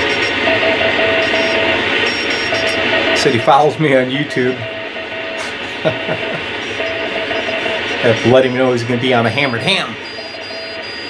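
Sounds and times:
morse code tone: 0.0 - 11.0
radio static hiss: 0.0 - 11.0.

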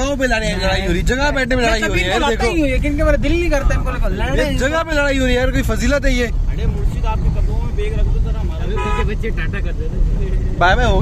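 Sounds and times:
car engine and road rumble: 0.0 - 11.0
voices talking: 0.0 - 11.0.

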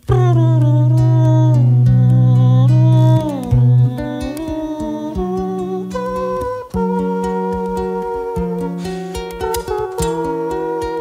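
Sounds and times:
acoustic guitar playing: 0.0 - 11.0
man's wordless vocal melody: 0.0 - 11.0.

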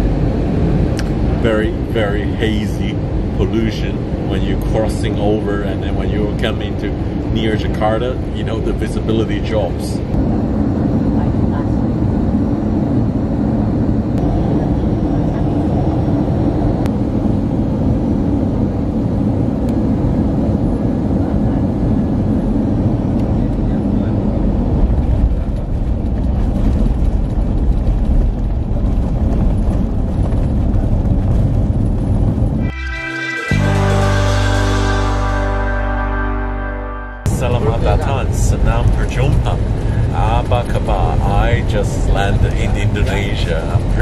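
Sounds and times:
airplane cabin rumble while taxiing: 0.0 - 32.7, 37.2 - 44.0
music: 32.6 - 37.3.

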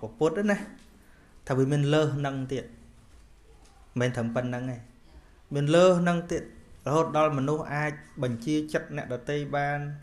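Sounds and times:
man speaking: 0.0 - 2.9, 3.9 - 10.0.

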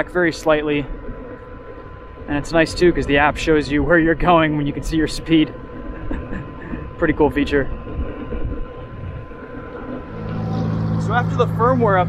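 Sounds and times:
faint high whine: 0.0 - 12.0
wind and road rumble: 0.0 - 12.0.

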